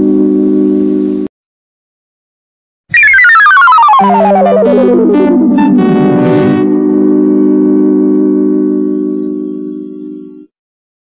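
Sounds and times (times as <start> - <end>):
held music chord: 3.9 - 9.2.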